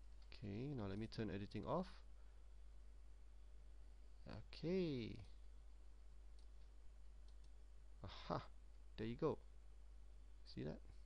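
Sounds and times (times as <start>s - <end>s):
steady low hum: 0.0s - 11.0s
faint computer mouse clicks: 6.3s - 7.6s.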